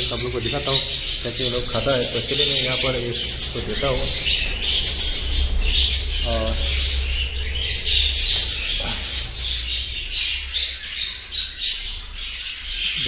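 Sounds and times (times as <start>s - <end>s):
budgerigars chattering and chirping: 0.0s - 13.0s
steady low hum: 0.0s - 13.0s.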